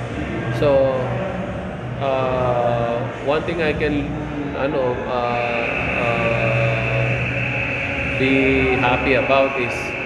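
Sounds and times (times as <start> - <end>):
background room noise: 0.0 - 10.0
man's drawn-out hesitation sound: 2.0 - 7.3, 8.0 - 10.0.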